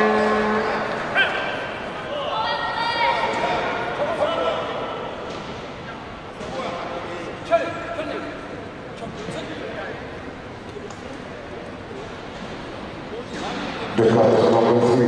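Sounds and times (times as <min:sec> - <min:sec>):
voices shouting and calling out: 0:00.0 - 0:05.2.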